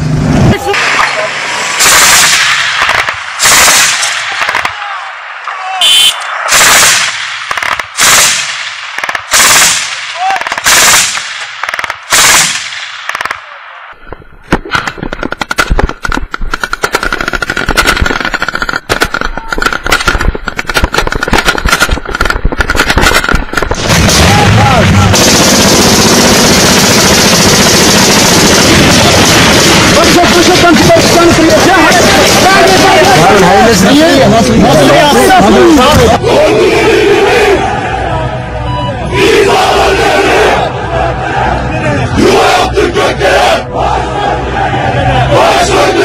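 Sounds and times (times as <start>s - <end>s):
loud steady rushing noise: 0.0s - 14.0s, 15.3s - 46.0s
rapid small-arms fire crackle: 1.0s - 5.0s, 6.3s - 34.1s
heavy machine gun firing: 1.8s - 4.7s, 6.5s - 13.4s, 14.5s - 36.0s.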